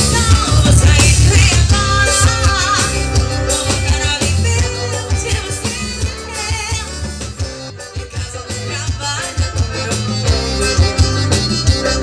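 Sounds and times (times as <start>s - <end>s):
accordion: 0.0s - 12.0s
drum kit beat: 0.0s - 12.0s
electric bass: 0.0s - 12.0s.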